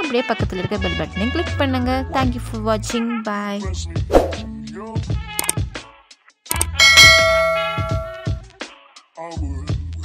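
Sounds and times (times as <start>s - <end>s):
button clicks: 6.5s - 8.2s
music beat: 6.5s - 8.4s
bright bell ding: 6.6s - 8.4s.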